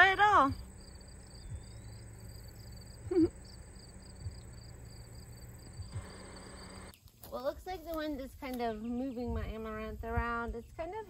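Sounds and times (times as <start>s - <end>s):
insects chirping: 0.0s - 7.0s
woman laughing: 3.0s - 3.4s.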